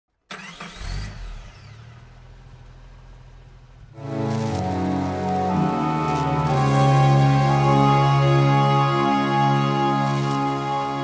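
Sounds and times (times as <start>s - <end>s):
music with long held chords: 4.0s - 11.0s
sweeping pitch glides: 4.0s - 11.0s.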